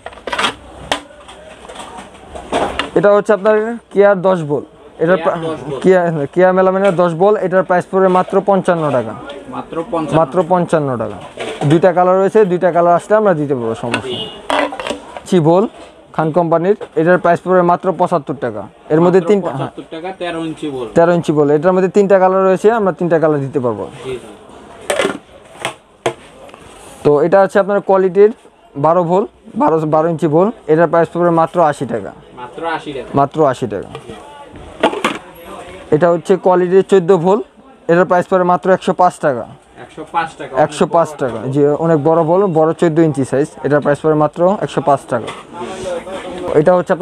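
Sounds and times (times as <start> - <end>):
man talking: 2.9 - 14.4, 15.2 - 24.4, 27.0 - 34.4, 35.5 - 47.0
man speaking: 3.0 - 14.4, 15.3 - 24.4, 27.0 - 34.4, 35.5 - 47.0
plastic bowl clacking: 13.9 - 15.3, 24.8 - 26.2.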